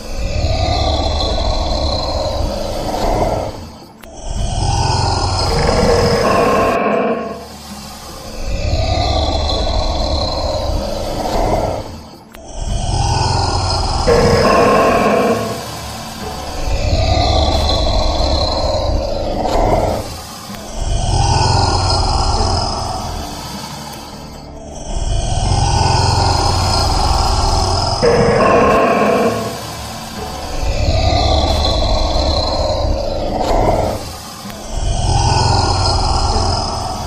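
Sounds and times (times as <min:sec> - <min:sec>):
deep growling roars: 0:00.0 - 0:03.6, 0:04.3 - 0:07.6, 0:08.4 - 0:12.0, 0:12.7 - 0:20.2, 0:24.8 - 0:37.0.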